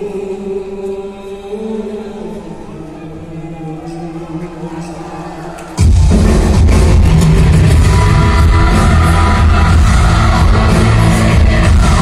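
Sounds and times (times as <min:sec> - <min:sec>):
live rock band playing loudly: 0:05.8 - 0:12.0.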